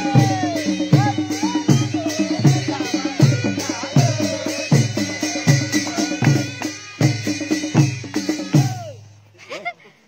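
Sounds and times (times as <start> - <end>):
deep drum beats: 0.0 - 9.0.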